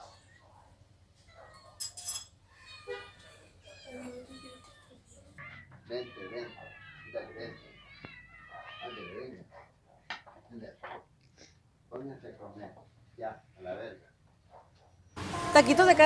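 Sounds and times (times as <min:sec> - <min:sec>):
cats meowing: 0:02.5 - 0:09.8.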